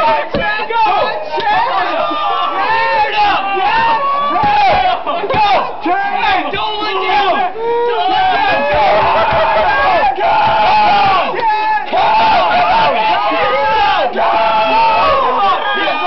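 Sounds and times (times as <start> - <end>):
crowd of men shouting: 0.0 - 16.0.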